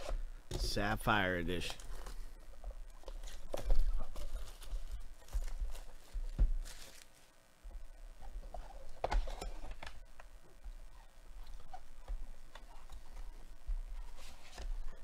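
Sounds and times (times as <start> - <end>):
cardboard rustling and scraping: 3.1 - 7.3, 12.6 - 15.0.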